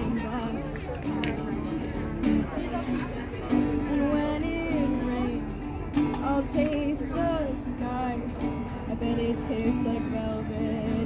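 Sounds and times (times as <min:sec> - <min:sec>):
acoustic guitar strummed chords: 0:00.0 - 0:11.0.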